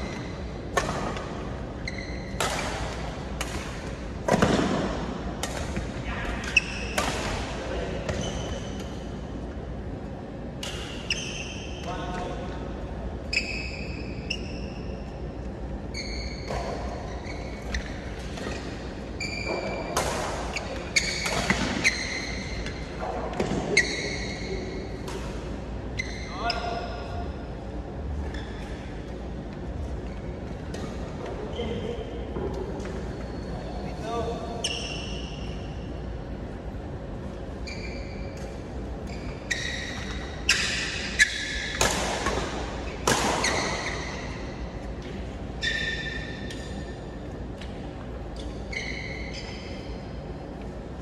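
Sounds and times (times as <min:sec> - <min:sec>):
shoes squeaking on court: 0:00.0 - 0:03.0, 0:08.0 - 0:09.2, 0:13.2 - 0:25.0, 0:25.8 - 0:27.0, 0:28.1 - 0:35.9, 0:37.4 - 0:50.8
rackets hitting shuttlecock: 0:00.7 - 0:01.5, 0:02.3 - 0:08.9, 0:40.4 - 0:44.4
short pitched squeak: 0:15.9 - 0:18.6, 0:37.6 - 0:38.4.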